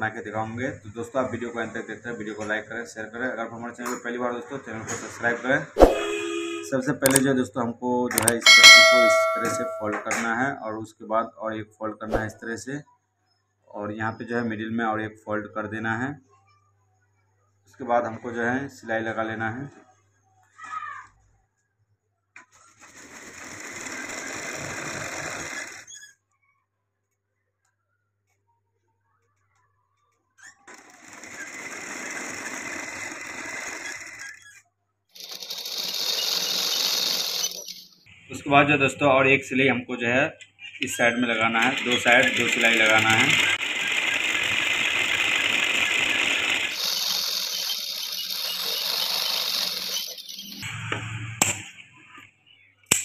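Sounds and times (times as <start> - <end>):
click: 7.0 - 7.2
sewing machine stitching: 22.5 - 26.0, 30.5 - 34.6, 35.2 - 38.0, 41.3 - 50.6.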